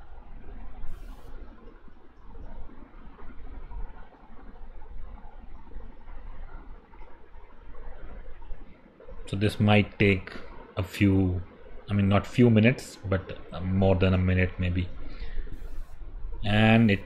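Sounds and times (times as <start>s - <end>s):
brief high hiss: 0.9s - 1.4s.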